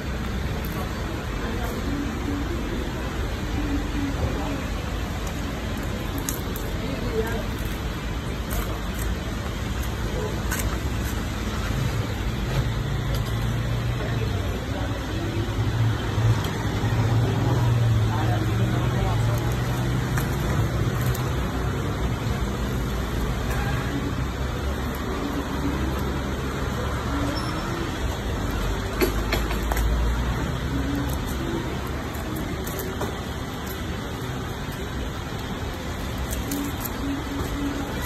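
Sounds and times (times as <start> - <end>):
road traffic noise: 0.0 - 38.0.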